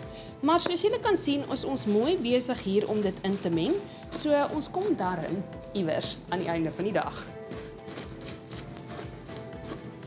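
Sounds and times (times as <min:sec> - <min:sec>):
soft background music: 0:00.0 - 0:10.0
wooden spoon stirring granola in bowl: 0:00.7 - 0:10.0.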